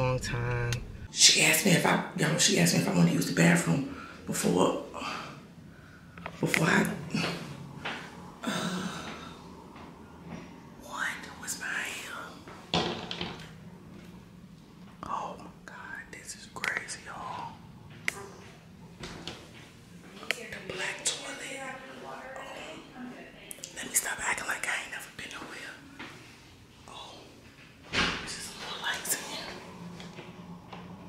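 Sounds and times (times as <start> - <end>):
sudden louder sound: 0.0 - 1.1
woman whispering: 10.8 - 12.5, 15.0 - 17.6, 20.2 - 25.9, 26.8 - 27.5, 28.2 - 29.7
person whispering softly: 15.0 - 17.6, 26.8 - 27.5.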